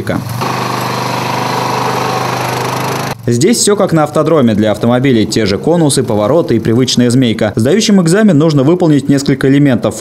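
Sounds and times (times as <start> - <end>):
quad bike engine running: 0.0 - 3.3, 4.5 - 7.4.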